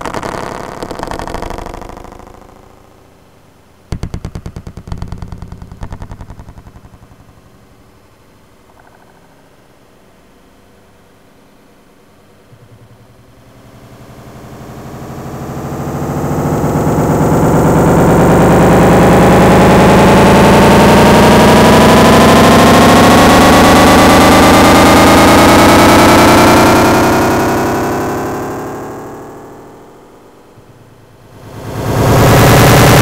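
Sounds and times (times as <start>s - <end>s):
synthesizer drone gliding upward: 12.5s - 33.0s.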